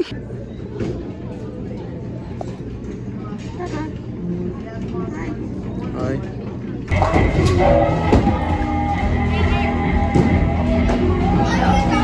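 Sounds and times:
crowd noise: 0:00.0 - 0:12.0
music: 0:06.9 - 0:12.0.

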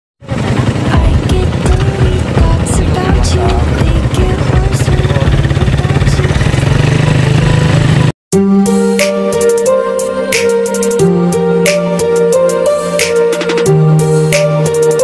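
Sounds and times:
motorcycle engine running: 0:00.2 - 0:08.2.

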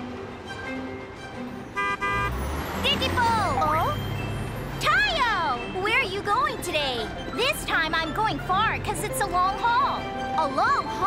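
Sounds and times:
light background music: 0:00.0 - 0:11.0
cartoon vehicle horn tooting: 0:01.8 - 0:04.0.

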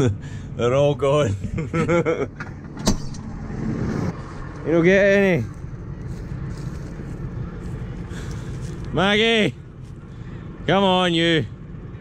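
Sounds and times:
tractor engine rumbling: 0:00.0 - 0:12.0.

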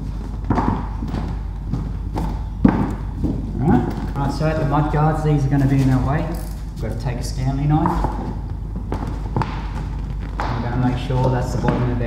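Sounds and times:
vinyl wrap rustling: 0:00.0 - 0:12.0
person speaking: 0:03.5 - 0:08.4, 0:10.5 - 0:12.0.

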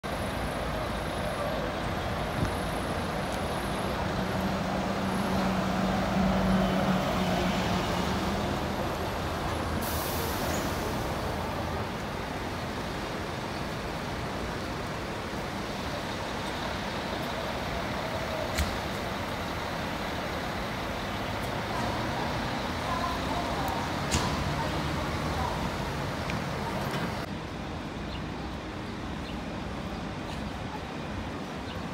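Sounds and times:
traffic noise: 0:00.0 - 0:31.9
diesel bus engines running: 0:00.1 - 0:31.9
air hiss: 0:09.8 - 0:11.1.

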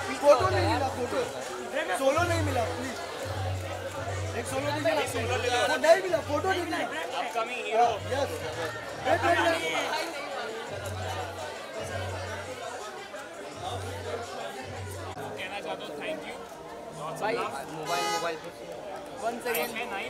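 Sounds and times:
people talking over one another: 0:00.0 - 0:20.0.

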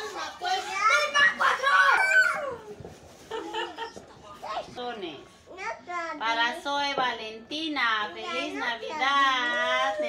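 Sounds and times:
young children talking and calling: 0:00.0 - 0:06.4.

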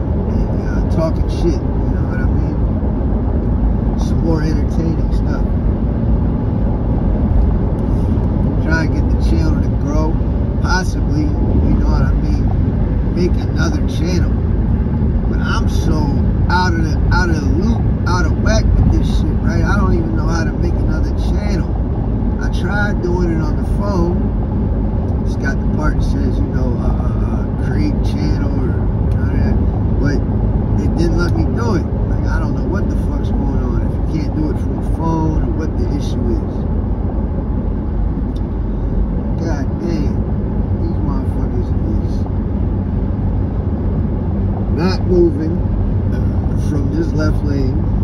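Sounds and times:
car cabin road and engine noise: 0:00.0 - 0:48.0
person speaking: 0:25.3 - 0:36.5, 0:44.7 - 0:47.9.

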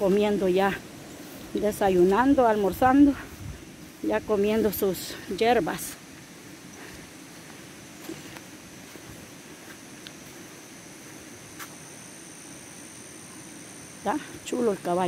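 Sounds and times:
high-pitched insect drone: 0:00.0 - 0:15.0.

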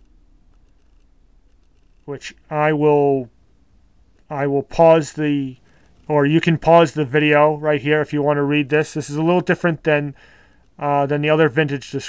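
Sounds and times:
quiet steady low hum: 0:00.0 - 0:12.0.

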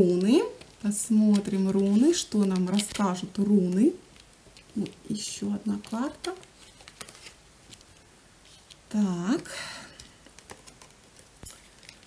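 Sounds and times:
cards tapping and rustling on cloth: 0:00.1 - 0:08.9, 0:09.9 - 0:12.0.

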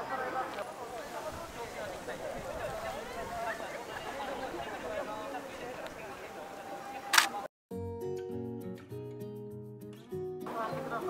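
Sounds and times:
camera shutter click: 0:07.1 - 0:07.4
background music: 0:07.7 - 0:11.0.

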